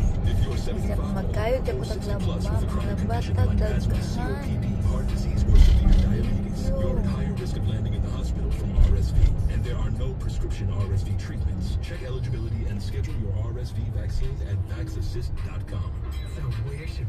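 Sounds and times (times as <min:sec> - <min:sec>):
engine and tyre rumble: 0:00.0 - 0:17.0
faint voices: 0:00.0 - 0:17.0.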